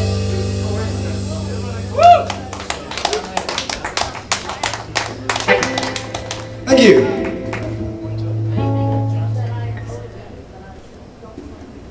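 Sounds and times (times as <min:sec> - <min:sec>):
audience whooping: 0:01.9 - 0:04.4
audience applause: 0:02.0 - 0:08.2
band final chord ringing: 0:05.5 - 0:10.0.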